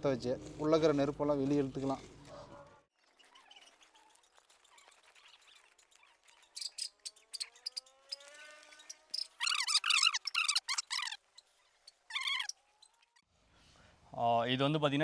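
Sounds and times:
birds chirping: 0:02.1 - 0:13.3.

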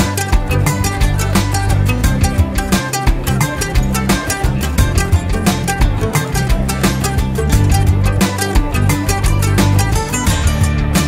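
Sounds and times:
latin style background music: 0:00.0 - 0:11.0.

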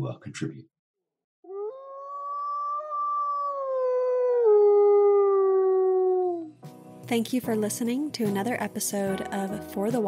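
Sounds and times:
wolf howling: 0:01.5 - 0:06.6.

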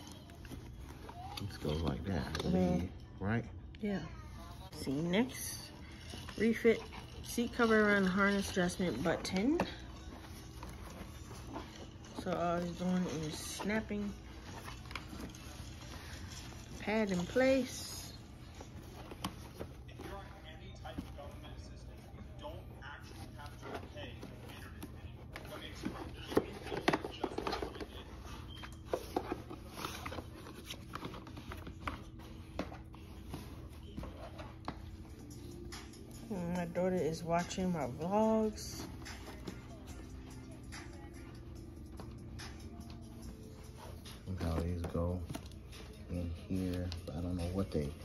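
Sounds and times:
low room hum: 0:00.0 - 0:48.0.

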